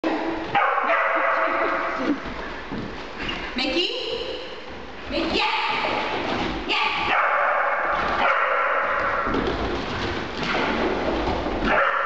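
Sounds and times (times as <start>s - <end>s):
dog barking excitedly: 0.5s - 2.0s, 6.8s - 9.3s, 11.6s - 12.0s.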